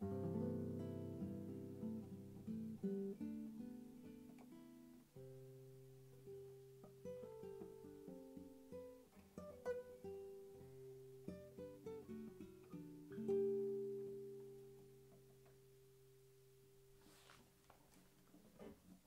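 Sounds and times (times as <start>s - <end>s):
classical guitar fingerstyle: 0.0s - 19.0s.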